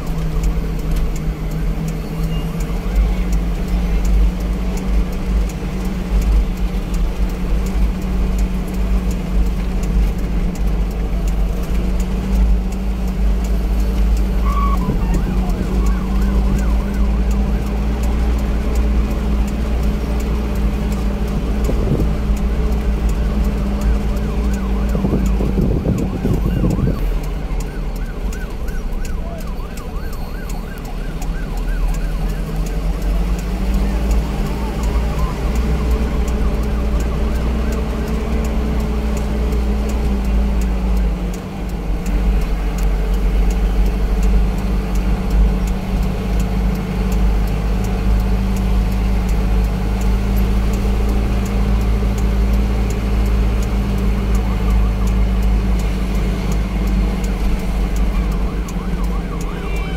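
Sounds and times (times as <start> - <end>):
road rumble: 0.0 - 59.9
vehicle engine: 0.0 - 59.9.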